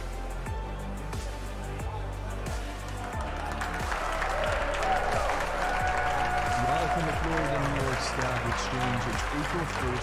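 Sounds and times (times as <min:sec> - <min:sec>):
background music: 0:00.0 - 0:10.0
group of people applauding: 0:02.5 - 0:10.0.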